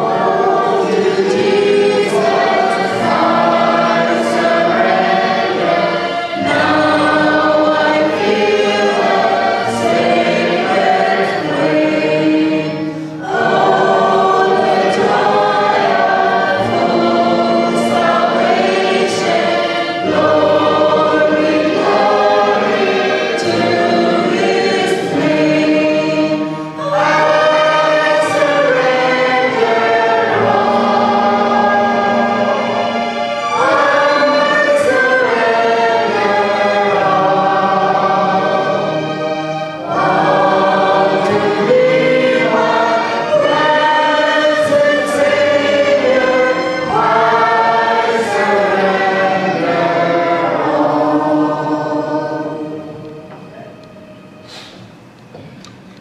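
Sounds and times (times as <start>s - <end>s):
congregation singing: 0.0s - 56.0s.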